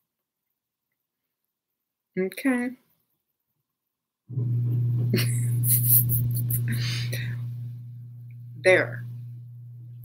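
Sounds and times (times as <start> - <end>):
steady low hum: 4.3 - 10.0
woman's soft breathy laugh: 5.2 - 7.4.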